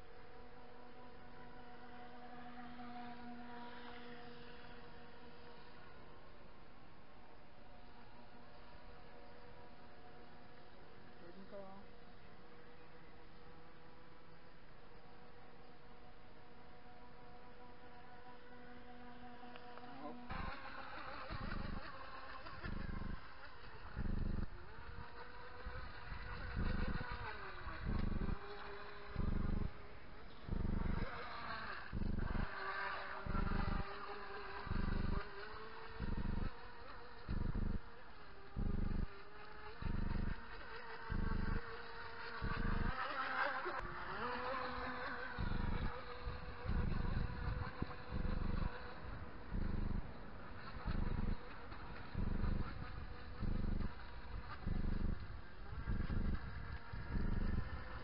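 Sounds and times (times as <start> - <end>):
model boat motor whining: 0.0 - 58.0
regular low pulse: 0.0 - 58.0.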